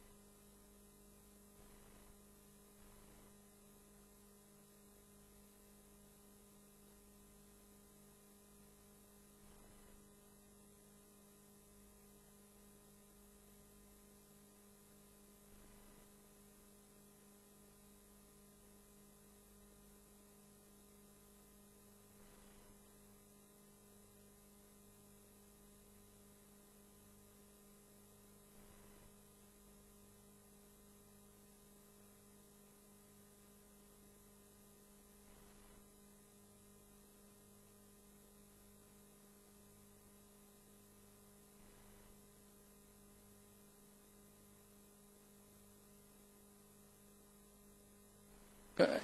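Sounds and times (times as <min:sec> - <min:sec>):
low electrical hum: 0:00.0 - 0:49.0
faint hiss: 0:32.0 - 0:44.8.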